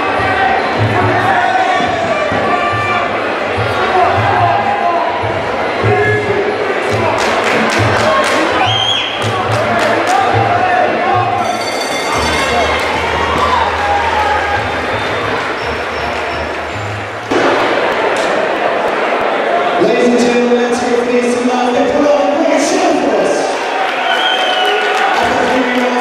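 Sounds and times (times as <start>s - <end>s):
music: 0.0s - 18.4s
cheering and applause: 0.0s - 20.5s, 22.9s - 26.0s
crowd shouting: 0.0s - 20.6s
bell ringing: 11.4s - 14.4s.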